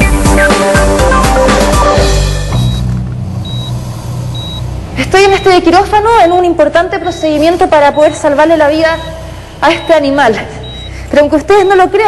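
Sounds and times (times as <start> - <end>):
patient monitor beeping: 2.6 - 12.0.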